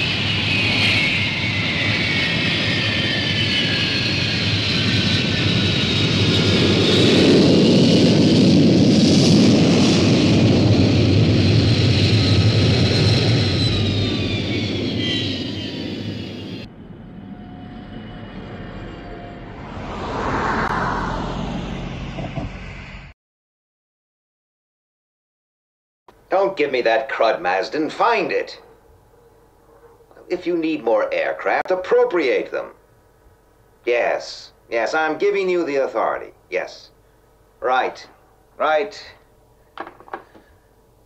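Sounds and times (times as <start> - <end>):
jet engines whining and rumbling: 0.0 - 23.2, 26.1 - 41.0.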